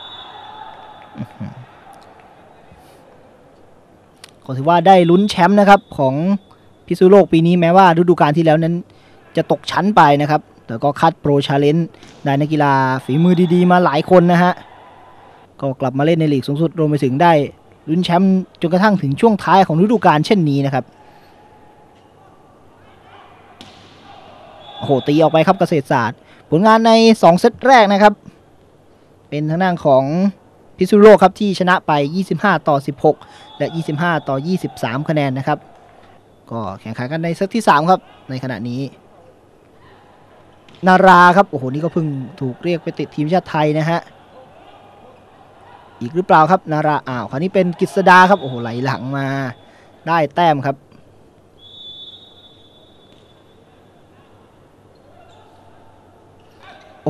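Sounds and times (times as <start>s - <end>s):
referee's whistle: 0.0s - 1.2s, 4.8s - 7.0s, 24.6s - 25.6s, 33.3s - 34.8s, 48.0s - 50.0s, 51.6s - 54.0s
sports hall murmur: 0.0s - 57.0s
volleyball smack: 23.6s - 24.2s.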